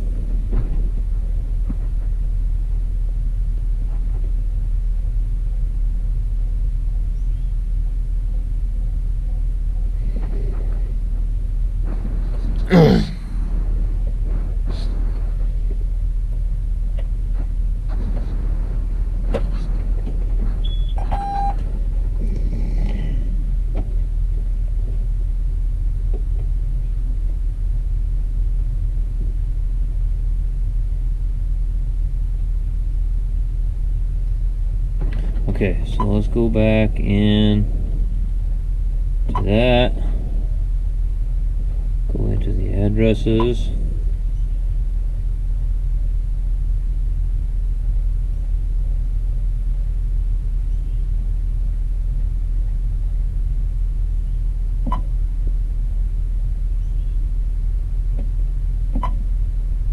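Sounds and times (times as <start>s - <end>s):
tractor cab rumble: 0.0s - 30.1s, 32.8s - 59.9s.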